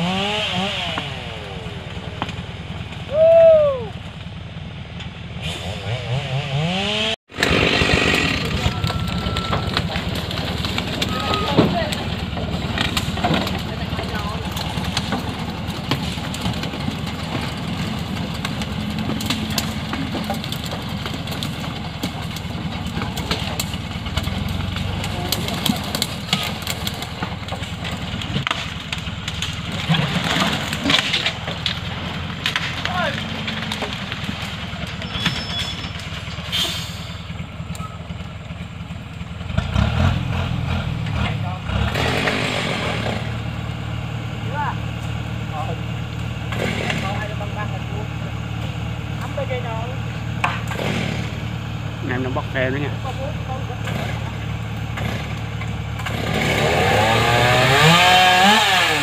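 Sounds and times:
truck engine idling: 1.2s - 5.4s, 7.5s - 59.0s
wooden logs knocking: 8.2s - 35.0s, 50.4s - 51.4s
voices: 8.3s - 17.0s, 24.7s - 26.8s, 32.7s - 34.0s, 46.6s - 50.1s, 52.0s - 54.6s.

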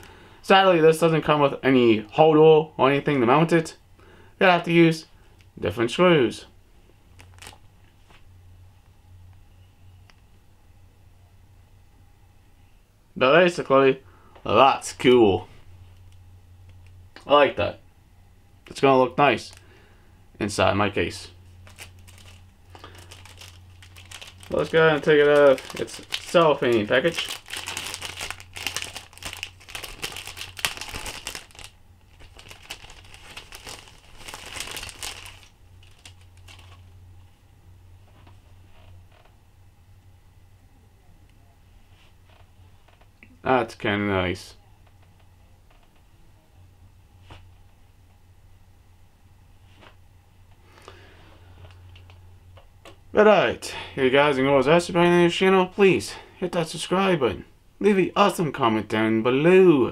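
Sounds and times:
low steady hum: 0.0s - 59.9s
cellophane bag rustling: 7.1s - 7.7s, 21.4s - 37.0s.

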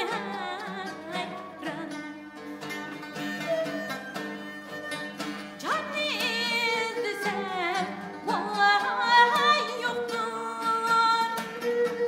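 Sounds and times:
woman singing with vibrato: 0.0s - 2.6s, 5.6s - 12.0s
bowed fiddle held notes: 0.0s - 12.0s
long-necked lutes: 0.0s - 12.0s.

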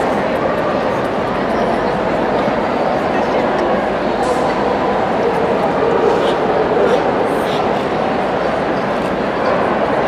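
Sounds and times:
crowd talking: 0.0s - 10.0s
dogs barking: 5.2s - 7.8s.

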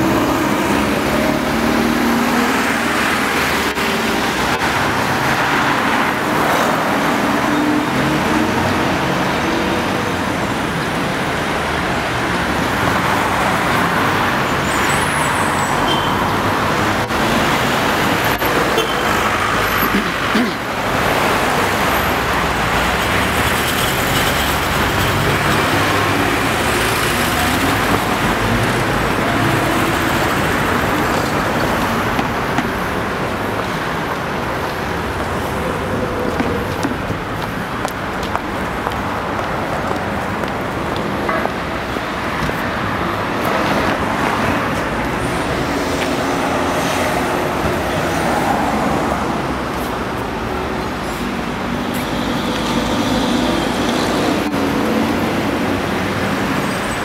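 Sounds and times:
city traffic: 0.0s - 57.0s.

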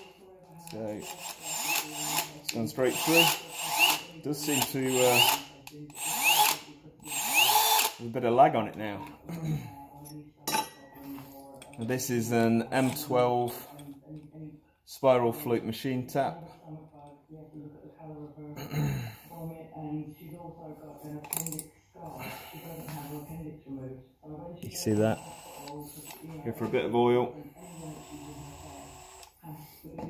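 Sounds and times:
cordless drill motor whining: 0.6s - 8.0s, 24.9s - 26.3s, 27.6s - 29.4s.

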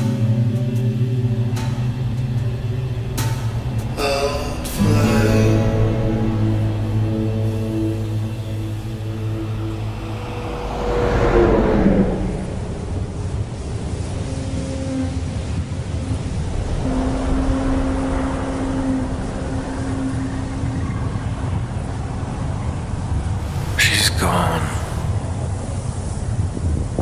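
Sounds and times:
held low tones: 4.0s - 14.1s
whoosh falling in pitch: 6.4s - 13.4s.

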